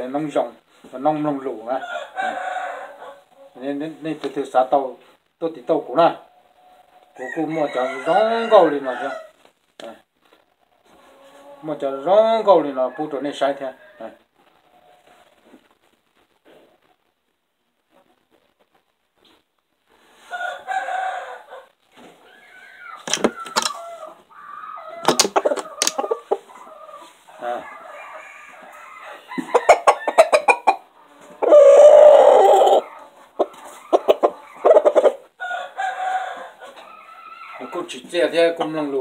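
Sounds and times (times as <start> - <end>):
rooster crowing and clucking: 1.7 - 3.5, 7.1 - 9.4, 20.2 - 33.1, 33.8 - 37.8
sharp clicks: 25.1 - 26.0.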